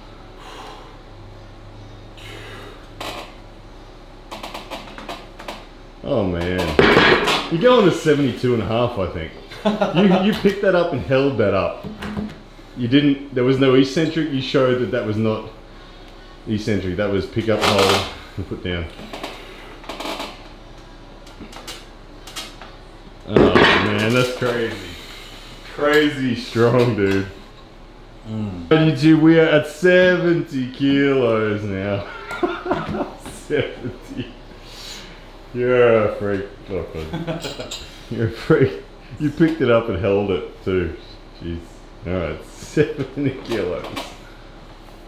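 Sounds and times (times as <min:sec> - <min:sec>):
sharp straining breaths: 0:02.2 - 0:03.0.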